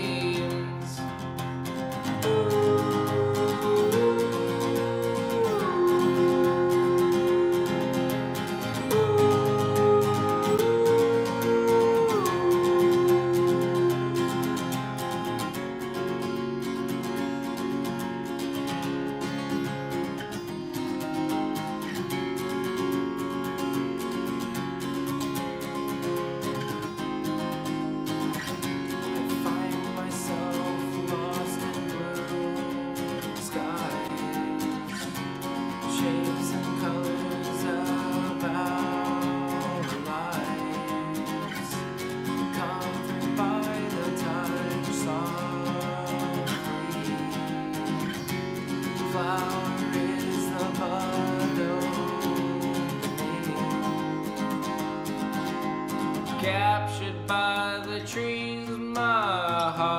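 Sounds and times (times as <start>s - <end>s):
person singing wordlessly: 0.0s - 15.9s, 28.4s - 55.4s, 56.0s - 59.9s
acoustic guitar strumming chords: 0.0s - 59.9s.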